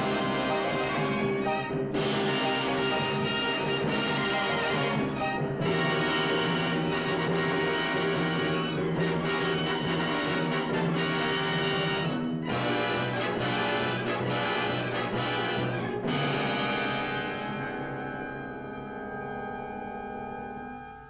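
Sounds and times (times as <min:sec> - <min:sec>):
orchestral music with brass: 0:00.0 - 0:21.0.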